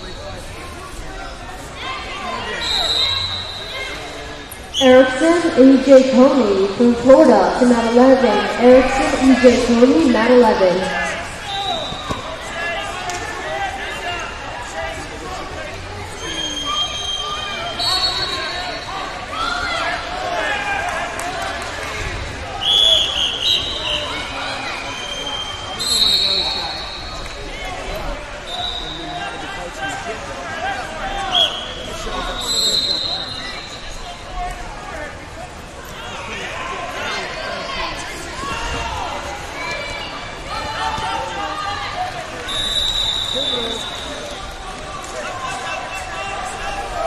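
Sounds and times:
people calling out in a hall: 0:01.7 - 0:47.0.

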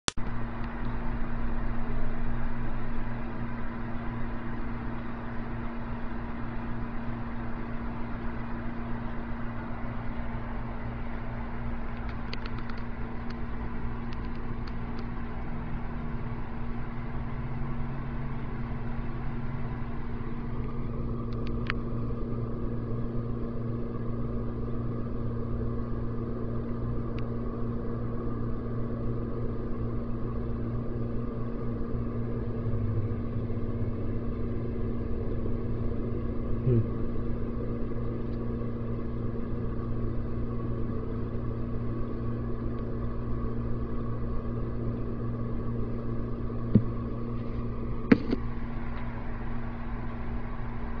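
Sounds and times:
low mechanical hum: 0:00.0 - 0:51.0.

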